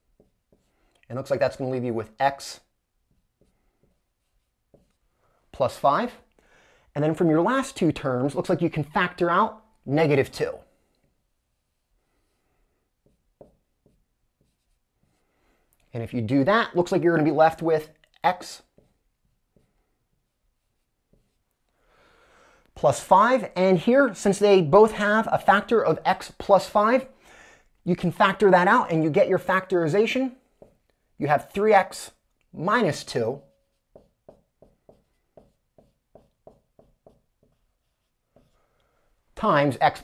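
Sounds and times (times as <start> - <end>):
marker writing on whiteboard: 0.0 - 6.1, 7.1 - 15.9, 16.5 - 21.6, 28.1 - 40.0
man speaking: 1.1 - 2.7, 5.5 - 6.3, 7.0 - 10.7, 15.9 - 18.8, 22.8 - 27.2, 27.8 - 30.4, 31.2 - 33.5, 39.4 - 40.0.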